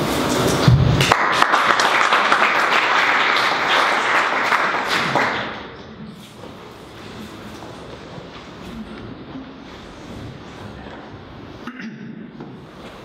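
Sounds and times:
audience applauding: 0:00.8 - 0:05.8.

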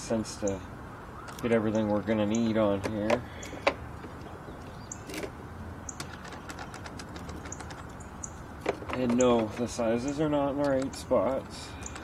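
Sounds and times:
metal sockets clinking: 0:05.0 - 0:08.0, 0:08.6 - 0:12.0.

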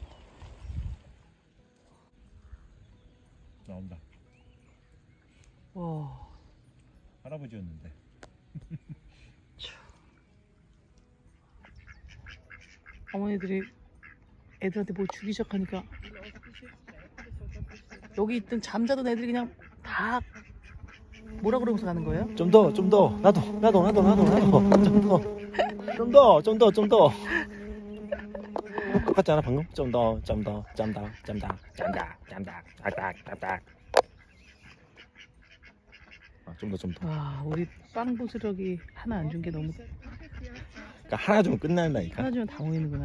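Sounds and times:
ducks quacking: 0:11.2 - 0:43.0.

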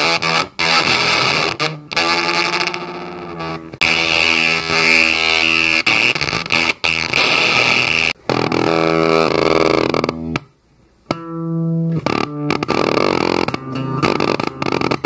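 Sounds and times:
distorted fuzz pedal drone: 0:00.0 - 0:10.5, 0:11.1 - 0:15.0.

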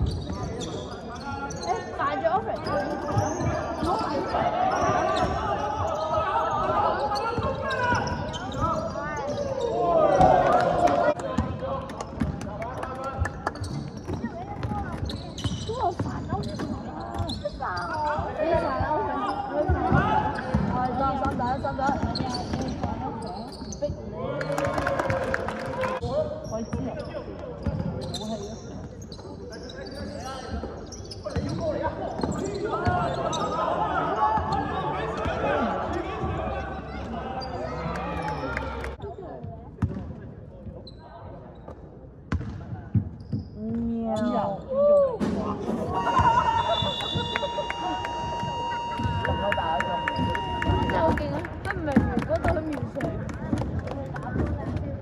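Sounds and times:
players calling and shouting: 0:00.0 - 0:39.3, 0:43.3 - 0:53.0.

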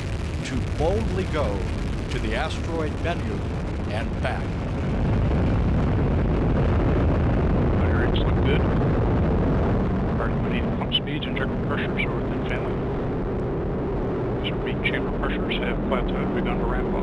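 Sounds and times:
rocket engine deep rumble: 0:00.0 - 0:17.0.

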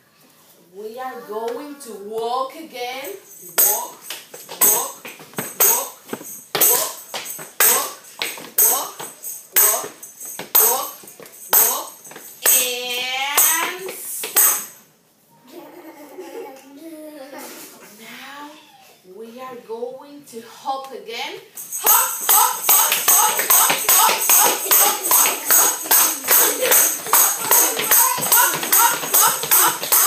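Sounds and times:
tambourine taps: 0:03.3 - 0:14.8, 0:21.6 - 0:30.0.

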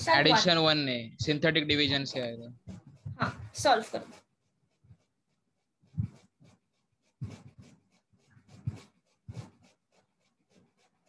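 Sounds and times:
pen scratching on paper: 0:00.1 - 0:11.0.

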